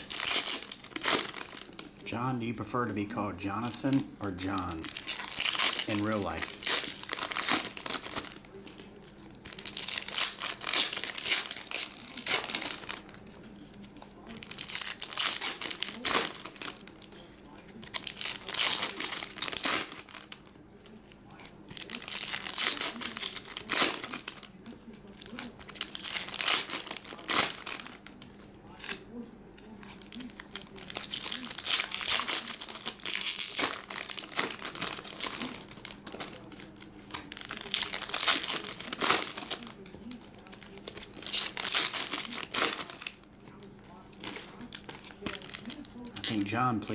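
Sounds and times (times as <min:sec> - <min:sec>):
foil packs crinkling and tearing: 0:00.0 - 0:03.0, 0:03.6 - 0:29.2, 0:29.8 - 0:46.9.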